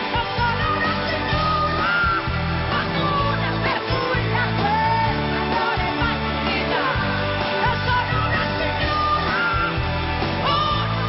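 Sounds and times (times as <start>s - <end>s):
live band playing pop-rock: 0.0s - 11.0s.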